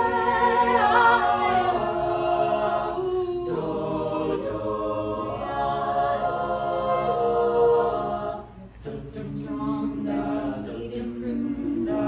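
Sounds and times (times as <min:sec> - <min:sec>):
a cappella group singing: 0:00.0 - 0:12.0.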